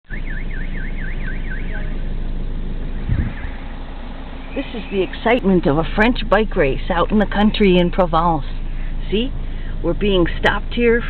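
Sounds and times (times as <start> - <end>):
siren yelping warble: 0.1 - 2.0
low engine hum: 0.1 - 11.0.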